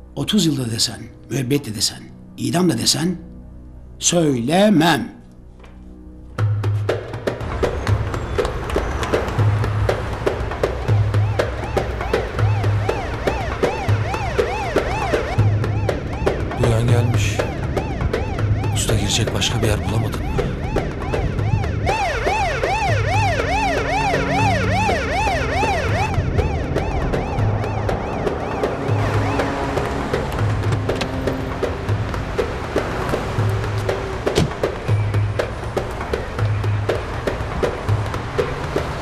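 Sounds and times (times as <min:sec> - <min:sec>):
music with low beat: 0:06.4 - 0:39.0
police siren yelping: 0:10.8 - 0:31.6.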